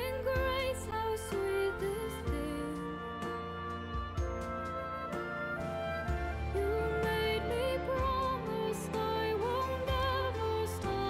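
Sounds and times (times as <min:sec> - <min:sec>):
instrumental backing with bass: 0:00.0 - 0:11.0
soprano singing with vibrato: 0:00.0 - 0:11.0.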